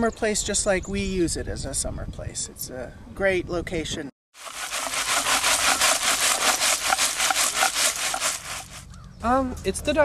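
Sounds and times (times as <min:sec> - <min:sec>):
gritty scraping of soil: 0:04.4 - 0:09.0.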